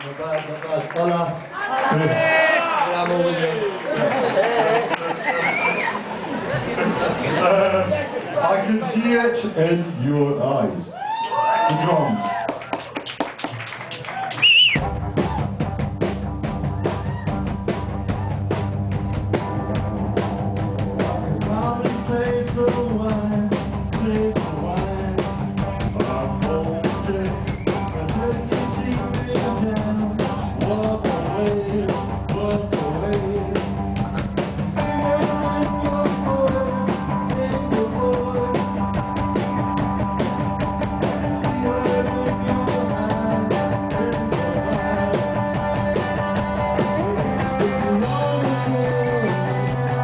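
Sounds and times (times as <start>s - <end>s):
live rock band: 10.6s - 50.0s
drum kit beat: 14.2s - 50.0s.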